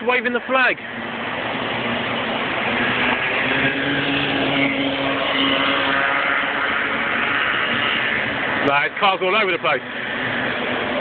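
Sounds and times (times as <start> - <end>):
kart engines droning: 0.8 - 11.0.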